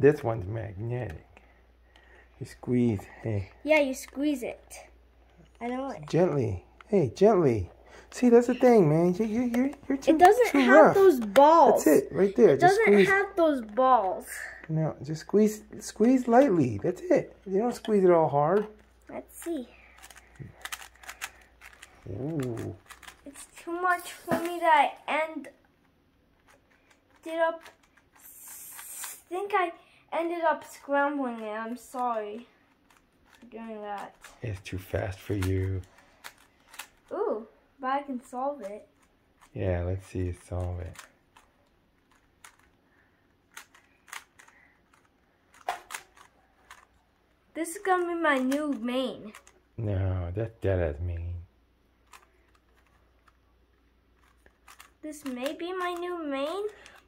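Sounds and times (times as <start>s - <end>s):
puzzle cube plastic clicks: 8.6s - 11.8s, 17.7s - 24.6s, 25.7s - 29.3s, 30.7s - 37.1s, 38.2s - 47.0s, 47.6s - 49.6s, 52.0s - 57.0s.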